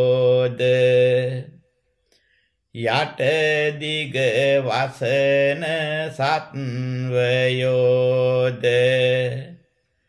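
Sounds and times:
man chanting in monotone: 0:00.0 - 0:01.6, 0:02.8 - 0:09.6.

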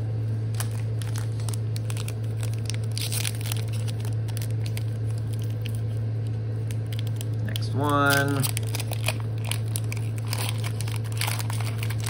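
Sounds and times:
low hum: 0:00.0 - 0:12.0
foil wrapper crinkling and tearing: 0:00.4 - 0:12.0.

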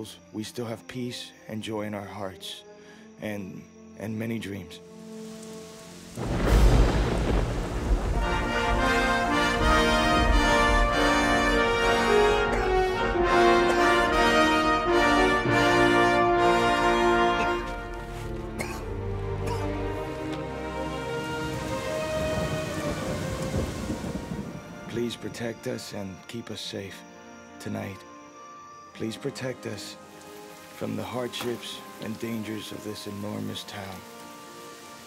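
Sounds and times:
soft background music: 0:00.0 - 0:35.0
steady rain: 0:04.8 - 0:25.4, 0:29.1 - 0:35.0
thunderclap rumbling: 0:06.2 - 0:14.0, 0:21.0 - 0:25.4.

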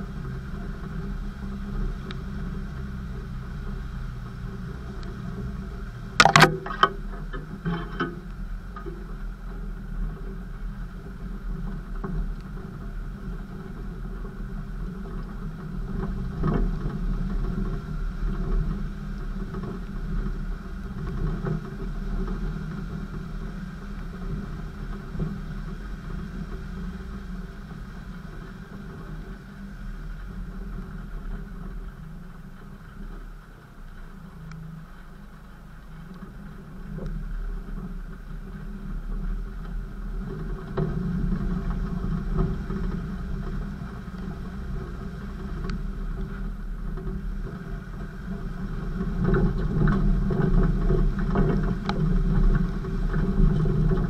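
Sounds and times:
engine low rumble: 0:00.0 - 0:54.0.

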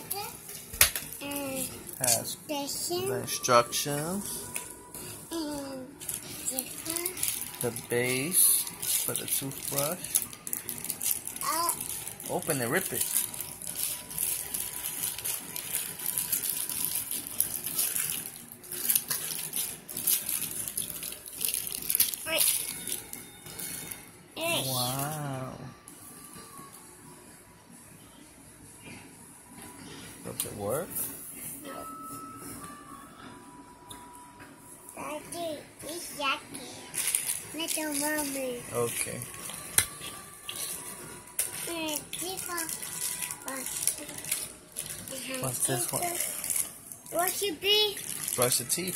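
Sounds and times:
child speaking: 0:00.0 - 0:00.4, 0:01.2 - 0:01.8, 0:02.4 - 0:03.4, 0:05.3 - 0:07.2, 0:11.4 - 0:11.8, 0:22.2 - 0:22.5, 0:24.4 - 0:25.0, 0:35.0 - 0:36.9, 0:37.5 - 0:38.7, 0:41.6 - 0:44.2, 0:45.1 - 0:46.4, 0:47.1 - 0:48.0
plastic packaging crinkling: 0:05.5 - 0:24.1, 0:36.9 - 0:48.9.

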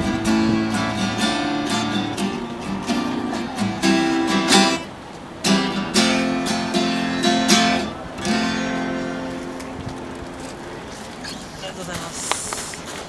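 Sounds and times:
acoustic guitars strumming chords: 0:00.0 - 0:12.6.

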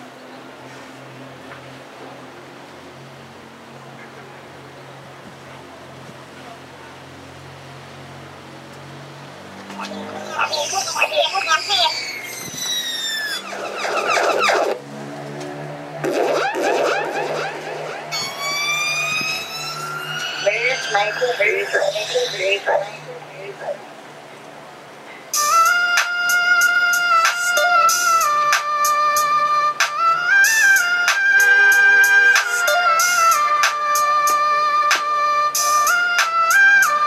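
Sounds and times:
rhythmic music: 0:09.8 - 0:12.0, 0:13.4 - 0:14.8, 0:15.7 - 0:23.8, 0:25.3 - 0:37.0
siren-like tone: 0:10.2 - 0:15.1, 0:16.0 - 0:23.8.

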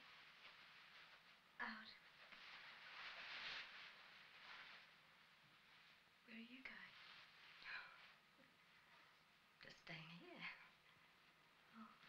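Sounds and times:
steady hiss: 0:00.0 - 0:12.0
person speaking softly: 0:06.2 - 0:08.1.

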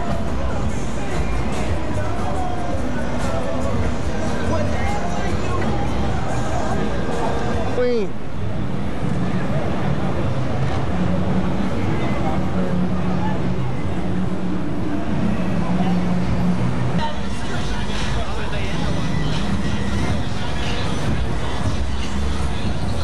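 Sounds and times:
people talking: 0:00.0 - 0:08.2, 0:17.0 - 0:21.1
car engines in traffic: 0:00.0 - 0:23.0.

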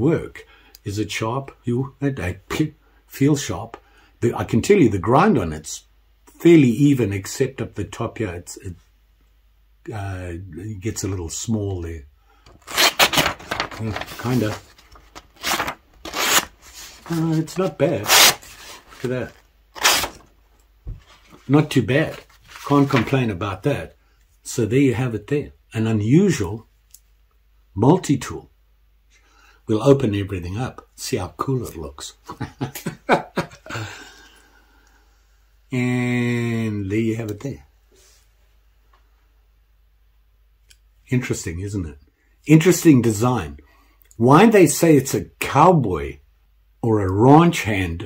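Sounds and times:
knife slicing through paper: 0:12.6 - 0:19.1, 0:19.8 - 0:20.2.

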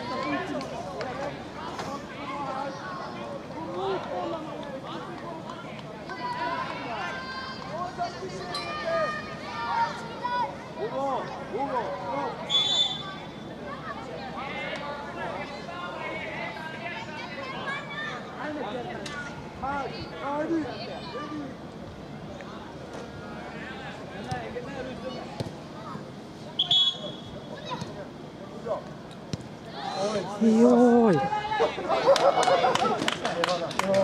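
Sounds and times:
players and spectators shouting: 0:06.1 - 0:18.5, 0:29.7 - 0:32.7.

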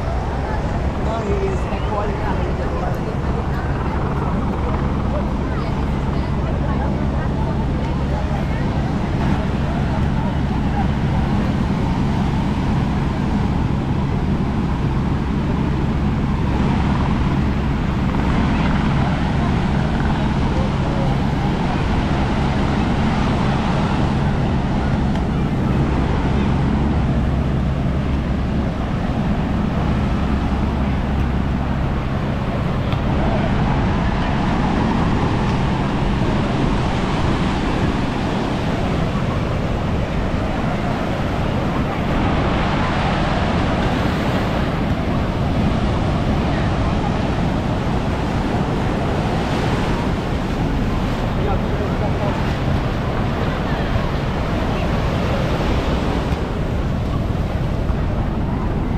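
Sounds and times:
ocean surf breaking: 0:00.0 - 0:58.9
wind rumbling on microphone: 0:00.0 - 0:58.9.

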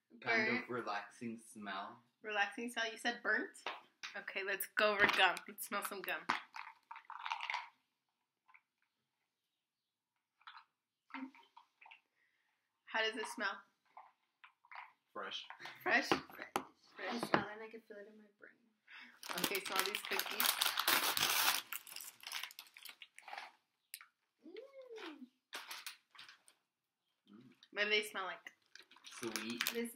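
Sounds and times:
plastic package rustling: 0:06.3 - 0:07.7, 0:19.2 - 0:23.6, 0:25.6 - 0:26.6, 0:28.6 - 0:29.9.

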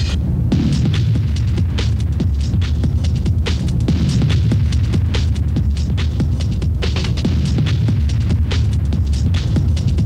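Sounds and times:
quick repeated percussion hits: 0:00.0 - 0:10.0
rave techno music: 0:00.0 - 0:10.0
throbbing bass drone: 0:00.0 - 0:10.0.

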